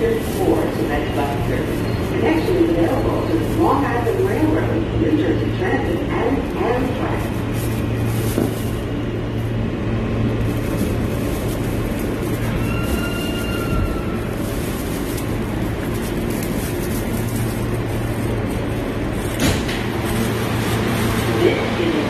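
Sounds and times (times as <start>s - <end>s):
subway car rumble and hum: 0.0s - 22.0s.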